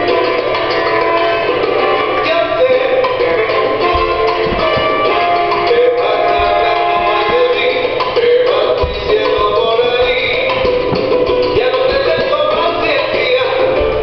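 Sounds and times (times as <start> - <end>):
salsa music: 0.0 - 14.0.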